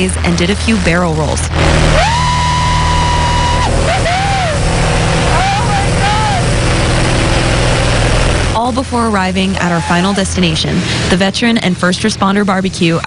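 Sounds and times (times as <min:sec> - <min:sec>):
propeller plane engine drone: 0:00.0 - 0:13.0
high-pitched vocal squeal: 0:01.9 - 0:04.6, 0:05.3 - 0:06.5.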